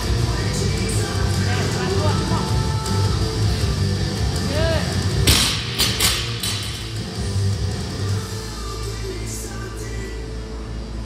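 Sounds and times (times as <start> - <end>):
music playing: 0.0 - 11.0
barbell dropped on rubber floor: 5.2 - 7.1.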